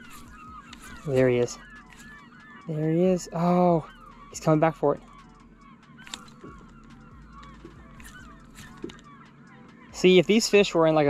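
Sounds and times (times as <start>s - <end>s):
distant flock of birds honking: 0.0s - 10.0s
light clicks: 6.0s - 9.1s.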